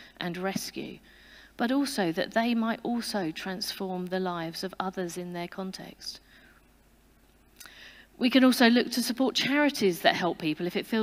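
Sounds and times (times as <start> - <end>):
person breathing in: 1.1 - 1.6, 7.6 - 8.1.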